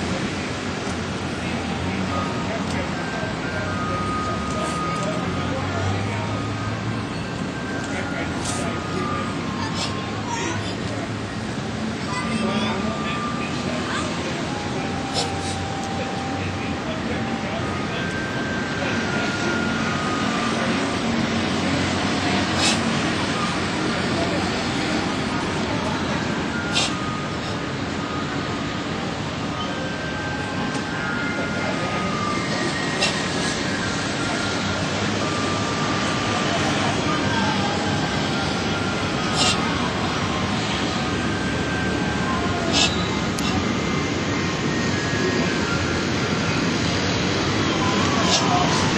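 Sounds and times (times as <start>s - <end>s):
distant traffic: 0.0s - 48.9s
faint voices: 0.0s - 48.9s.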